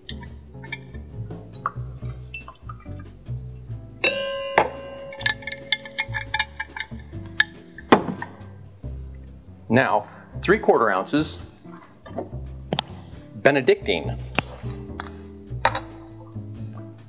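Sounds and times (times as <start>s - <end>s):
background music with bass line: 0.0s - 17.0s
metal jigger clinking on shaker tin: 4.0s - 7.5s.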